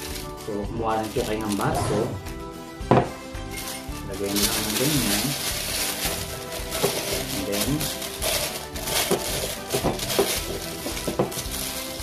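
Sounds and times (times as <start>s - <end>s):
plastic bag crinkling: 0.0s - 2.4s, 3.4s - 12.0s
soft background music: 0.0s - 12.0s.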